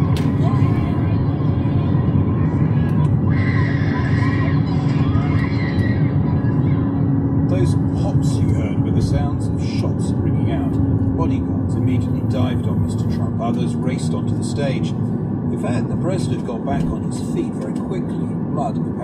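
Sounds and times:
crowd voices shouting: 0.0s - 7.2s
car cabin road noise: 0.0s - 19.0s
engine hum: 0.0s - 19.0s
radio news report: 6.3s - 19.0s.

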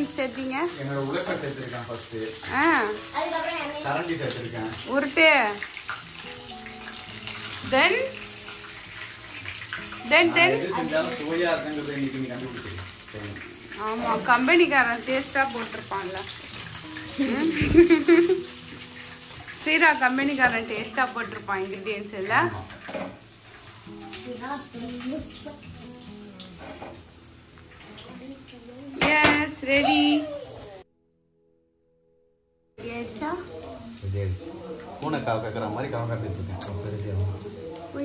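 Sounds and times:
water running from a tap: 0.0s - 30.8s, 32.8s - 38.0s
faint sung melody: 9.8s - 11.6s, 23.8s - 26.8s, 27.8s - 30.8s, 33.0s - 38.0s.

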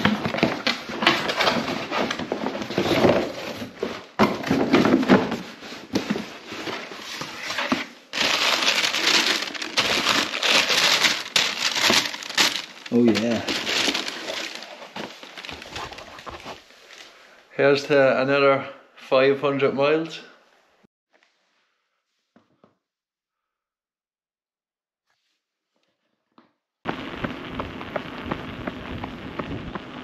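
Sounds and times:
cardboard and paper rustling: 0.0s - 17.2s.

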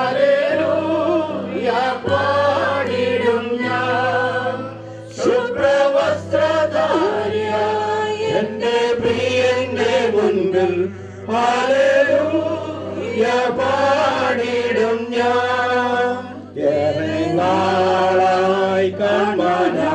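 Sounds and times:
group singing a hymn: 0.0s - 19.9s.

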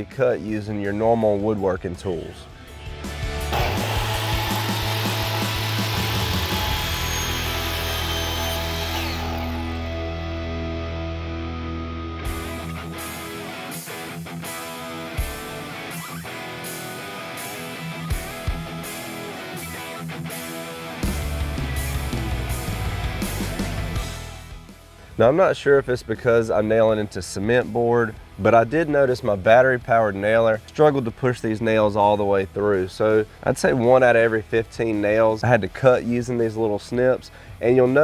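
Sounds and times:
background music with steady beat: 0.0s - 11.6s, 12.2s - 38.0s
miter saw cutting stone: 3.5s - 9.9s.

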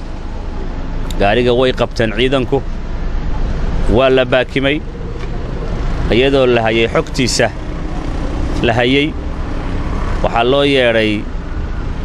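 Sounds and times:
steady low rumble: 0.0s - 12.0s
man speaking: 1.1s - 2.7s, 3.9s - 4.9s, 6.1s - 7.6s, 8.6s - 9.2s, 10.2s - 11.3s.

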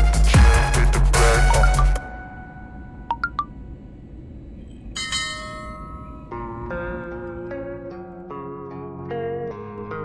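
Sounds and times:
low steady rumble: 1.8s - 8.2s
ringing bell-like tone: 4.7s - 6.8s
plucked guitar music: 6.2s - 10.0s.

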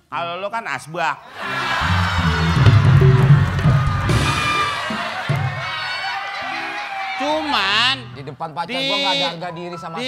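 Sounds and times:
audience laughing and cheering: 1.2s - 10.0s
music playing: 1.3s - 7.2s.

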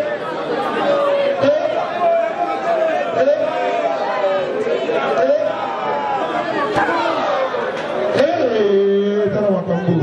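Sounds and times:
crowd voices calling out: 0.0s - 10.0s.

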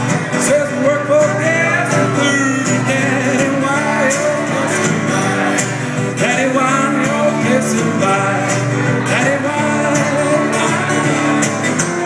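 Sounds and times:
acoustic guitar strumming: 0.0s - 12.0s
harmonica melody: 0.2s - 6.0s.

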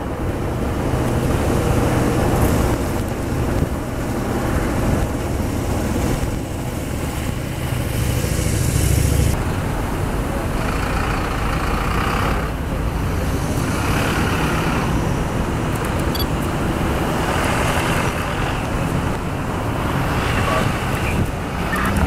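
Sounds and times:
cars passing with tyre noise: 0.0s - 22.0s.

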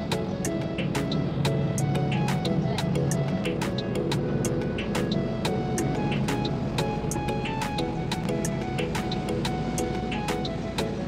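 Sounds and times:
background music with steady beat: 0.0s - 11.0s
bus engine rumble: 0.0s - 11.0s.

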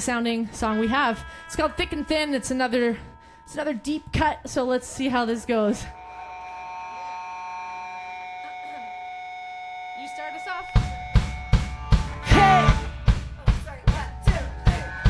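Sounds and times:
electric guitar ringing tone: 0.0s - 13.1s, 14.1s - 15.0s
punk rock song: 10.6s - 15.0s.

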